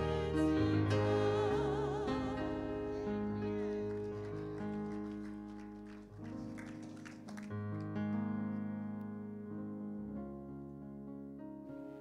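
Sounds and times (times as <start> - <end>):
keyboard sustained chords: 0.0 - 12.0.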